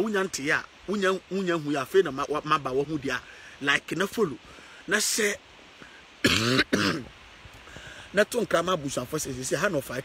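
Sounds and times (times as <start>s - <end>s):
man clearing his throat: 6.2s - 7.1s.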